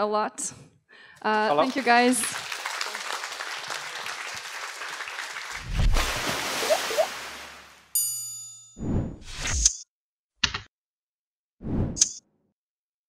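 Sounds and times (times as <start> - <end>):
audience applause: 1.3 - 7.5
bright ringing ding: 8.0 - 8.8.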